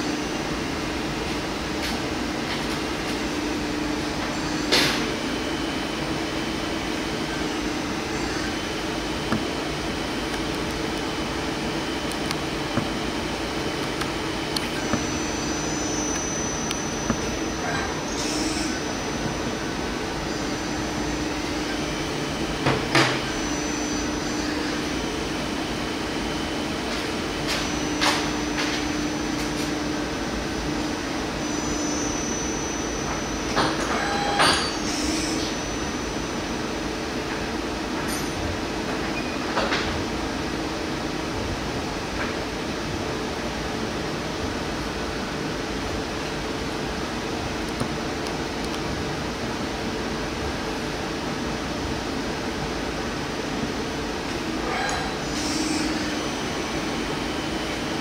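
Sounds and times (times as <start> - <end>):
lathe machine hum: 0.0 - 38.0, 40.1 - 58.0.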